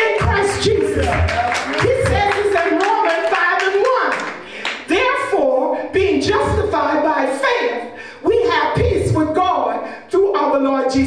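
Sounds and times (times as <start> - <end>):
rhythmic hand-clapping: 0.0 - 4.9.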